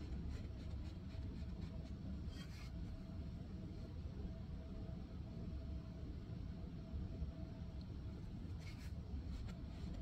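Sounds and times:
paintbrush scratching canvas: 0:00.0 - 0:03.0
low room hum with faint tone: 0:00.0 - 0:10.0.

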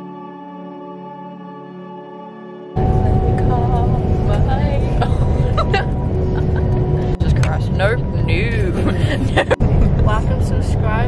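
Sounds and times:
coach engine and road rumble: 0:02.8 - 0:11.0
voices: 0:02.8 - 0:11.0.

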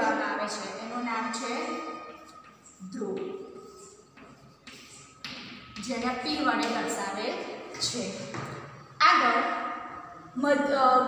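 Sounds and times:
chalk scraping on blackboard: 0:03.7 - 0:05.4.

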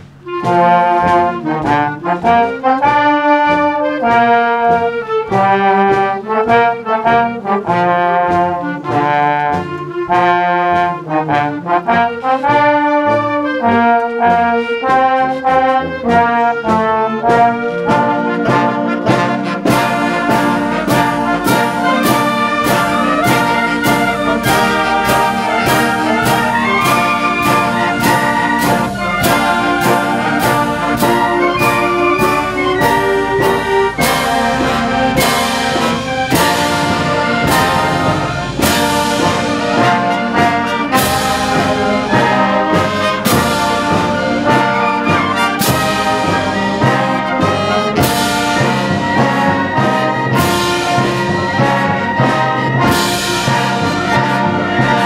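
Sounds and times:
concert band playing: 0:00.0 - 0:55.0.

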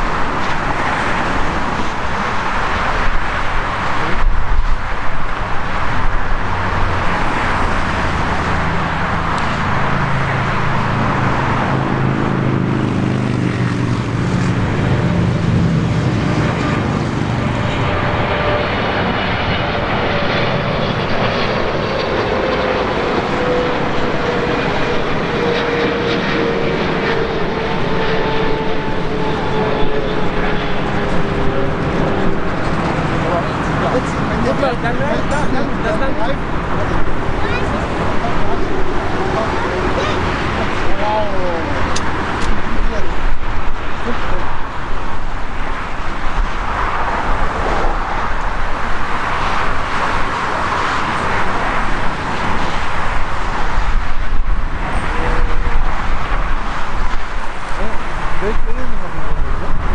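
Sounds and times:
jet engine whine: 0:00.0 - 0:59.9
jet engines rushing: 0:00.0 - 0:59.9.

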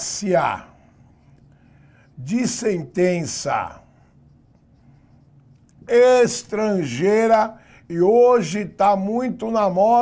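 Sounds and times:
marker writing on whiteboard: 0:04.2 - 0:05.9.

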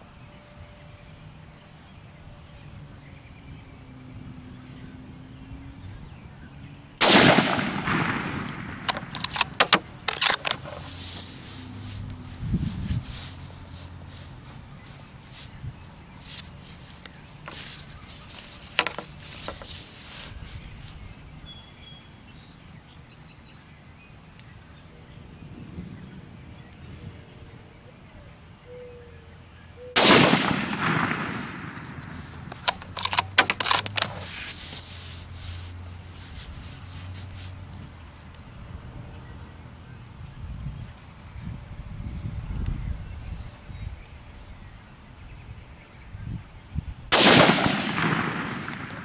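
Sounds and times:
rifle shot with echo: 0:07.0 - 0:10.6, 0:30.0 - 0:33.8, 0:47.1 - 0:49.0
rifle bolt metallic clicks: 0:07.0 - 0:10.9, 0:30.0 - 0:34.3.

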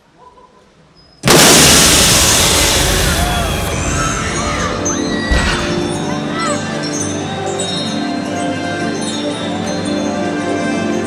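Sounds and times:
loud pyrotechnic explosion: 0:01.2 - 0:06.2
crowd noise: 0:01.2 - 0:10.4
music: 0:01.8 - 0:11.0.

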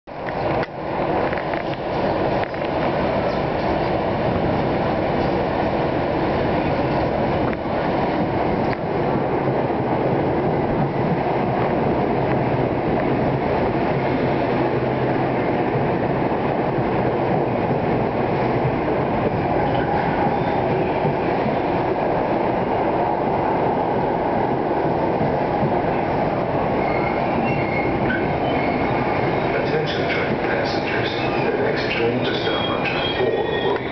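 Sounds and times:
train rumbling past: 0:00.1 - 0:33.9
faint high squeals: 0:26.8 - 0:29.6, 0:32.3 - 0:33.9.

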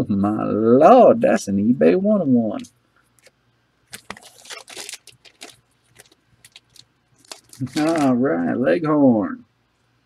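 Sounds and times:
trading cards rustling and clicking: 0:03.9 - 0:08.1.

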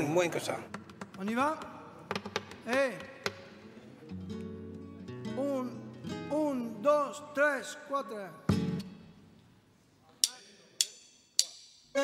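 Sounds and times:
hand claps: 0:00.7 - 0:03.6.

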